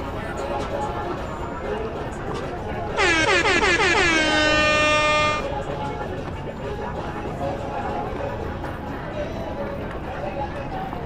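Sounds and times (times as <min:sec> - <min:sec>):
loud horn blast: 0:03.0 - 0:05.5.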